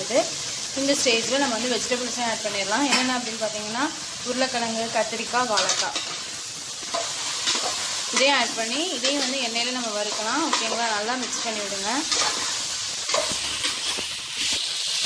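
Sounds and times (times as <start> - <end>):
vegetables sizzling in oil: 0.0 - 15.0.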